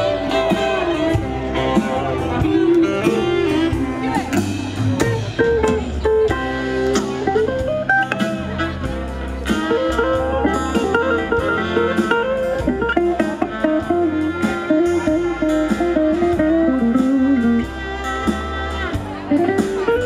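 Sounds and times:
acoustic guitar: 0:00.0 - 0:20.0
fiddle: 0:00.0 - 0:20.0
mandolin: 0:00.0 - 0:20.0
upright bass: 0:00.0 - 0:20.0.

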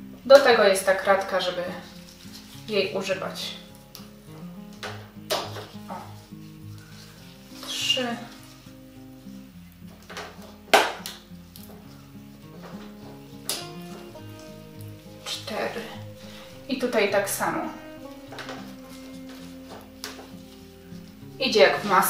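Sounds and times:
background music: 0:00.0 - 0:22.0
rustle of leaves: 0:01.5 - 0:03.8, 0:05.6 - 0:09.5
blade snipping plant stems: 0:03.9 - 0:04.1, 0:10.0 - 0:11.9, 0:12.6 - 0:14.4.

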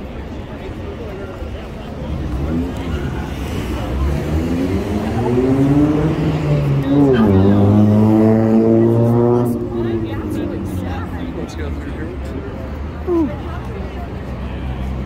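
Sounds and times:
crowd chatter: 0:00.0 - 0:15.0
traffic rumble: 0:00.0 - 0:15.0
car engine revving: 0:02.0 - 0:11.2.

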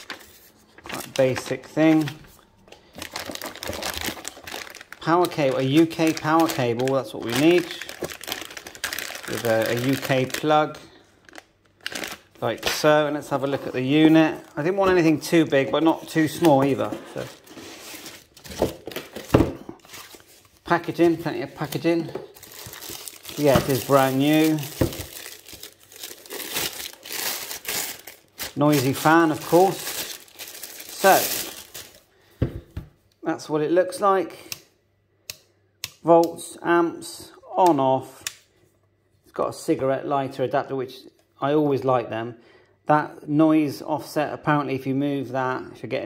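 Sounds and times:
plastic packaging crinkling: 0:00.0 - 0:32.1.

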